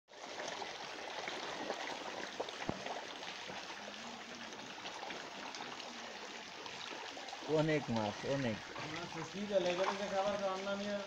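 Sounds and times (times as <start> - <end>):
fish splashing water: 0.1 - 11.0.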